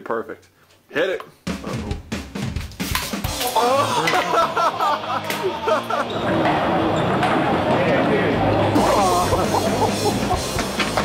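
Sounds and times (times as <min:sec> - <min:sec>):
background music: 0:01.4 - 0:11.0
people laughing loudly: 0:03.4 - 0:06.9, 0:08.7 - 0:11.0.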